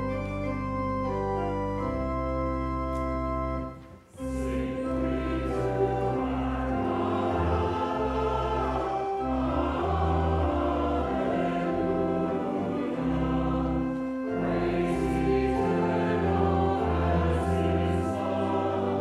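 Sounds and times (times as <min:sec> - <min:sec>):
organ chords: 0:00.0 - 0:19.0
voices singing: 0:04.2 - 0:19.0.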